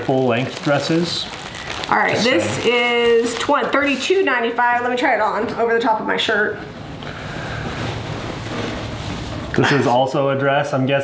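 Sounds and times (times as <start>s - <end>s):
clothing rustling: 7.1s - 9.7s.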